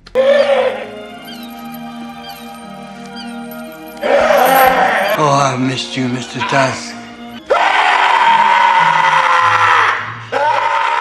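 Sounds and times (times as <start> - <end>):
film soundtrack music: 0.0 - 11.0
wailing cry: 0.1 - 2.6, 3.2 - 5.2, 7.5 - 11.0
high falling chirps: 0.4 - 5.2.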